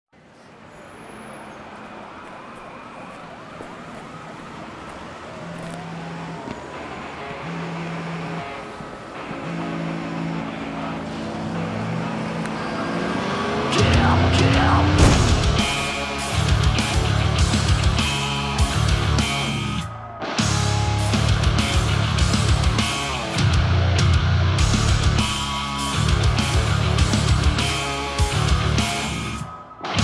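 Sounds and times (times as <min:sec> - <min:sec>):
traffic noise: 0:00.1 - 0:30.0
distant siren wailing: 0:00.7 - 0:23.5.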